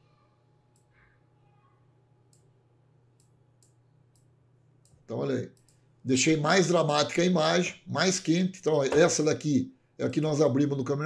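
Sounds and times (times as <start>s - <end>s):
low steady hum: 0.0s - 11.0s
faint mouse clicks: 3.2s - 5.8s.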